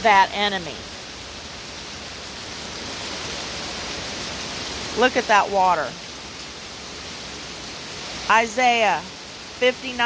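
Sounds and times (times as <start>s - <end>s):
heavy rain: 0.0s - 10.0s.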